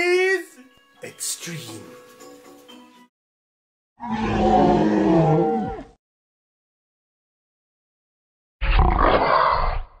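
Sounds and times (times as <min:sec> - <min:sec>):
rough roar-like growl: 0:04.0 - 0:06.0, 0:08.6 - 0:10.0.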